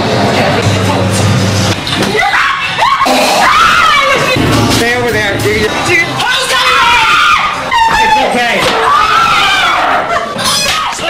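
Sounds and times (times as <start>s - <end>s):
people screaming: 2.1s - 4.4s, 6.2s - 11.0s
low droning music: 3.2s - 7.4s.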